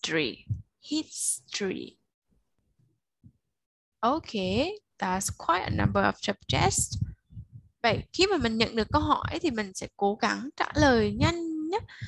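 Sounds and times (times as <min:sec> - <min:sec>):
faint low thumps: 0:00.4 - 0:00.7, 0:05.2 - 0:09.6, 0:10.8 - 0:12.0.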